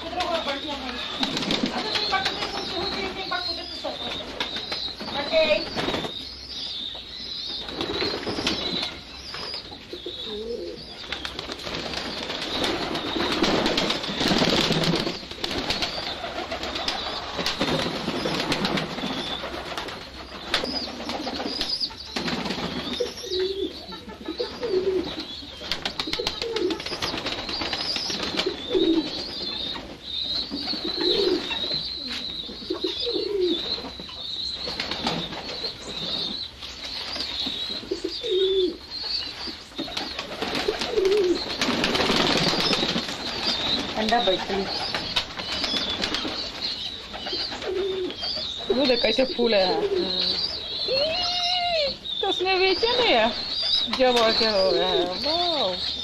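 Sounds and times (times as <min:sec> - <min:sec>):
pigeons cooing: 0:00.0 - 0:56.0.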